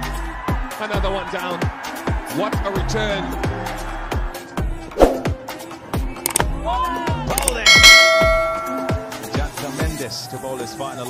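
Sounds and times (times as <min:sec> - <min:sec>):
pop music with steady beat: 0:03.2 - 0:11.0
bright bell-like chime: 0:07.7 - 0:09.2.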